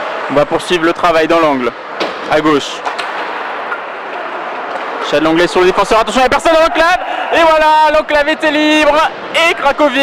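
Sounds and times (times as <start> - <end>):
ice hockey rink ambience: 0.0 - 10.0.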